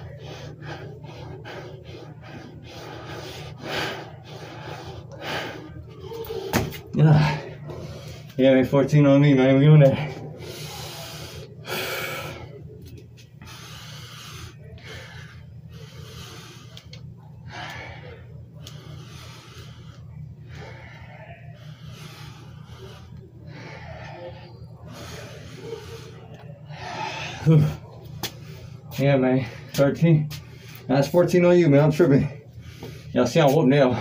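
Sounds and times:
man breathing hard: 0.0 - 8.4, 9.9 - 34.0
steady low hum: 0.0 - 34.0.

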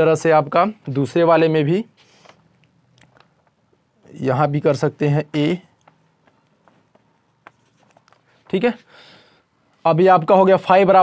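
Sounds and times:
marker writing on whiteboard: 5.6 - 8.9.

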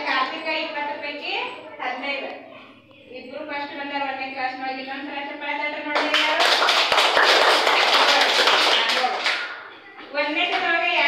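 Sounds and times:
children applauding: 6.0 - 9.7.

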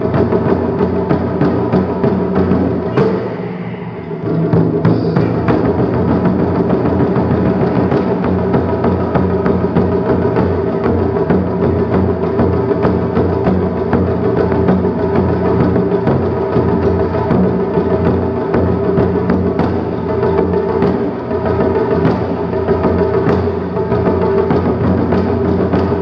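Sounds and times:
taiko drums playing: 0.0 - 26.0.

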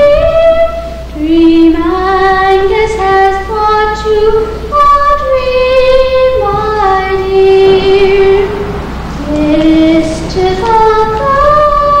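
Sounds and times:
girl singing long notes: 0.0 - 12.0.

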